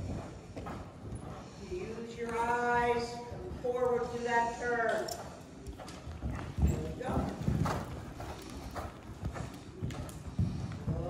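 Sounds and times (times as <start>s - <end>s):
horse hoofbeats on soft dirt: 0.0s - 11.0s.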